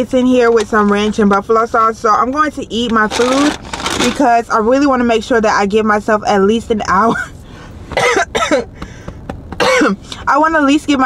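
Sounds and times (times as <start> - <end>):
woman coughing: 7.1 - 8.8, 9.6 - 10.1.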